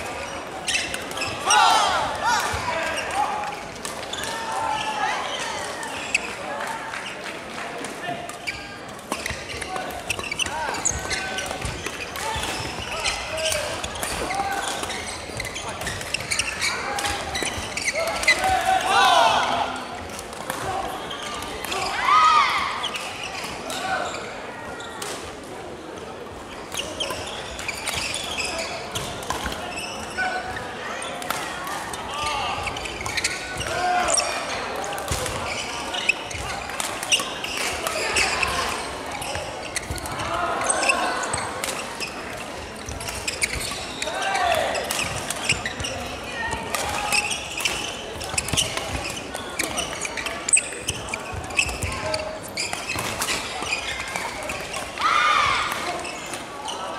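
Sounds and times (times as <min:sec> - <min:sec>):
shoes squeaking on wooden floor: 0:00.2 - 0:01.7, 0:08.5 - 0:18.7, 0:26.7 - 0:30.7, 0:32.2 - 0:34.4, 0:35.0 - 0:56.9
players shouting: 0:01.3 - 0:06.0, 0:16.6 - 0:19.9.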